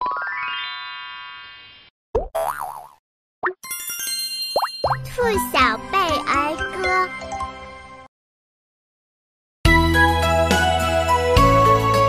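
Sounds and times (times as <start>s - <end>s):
cartoon boing: 2.2s - 3.0s
bright ringing music jingle: 3.6s - 5.2s.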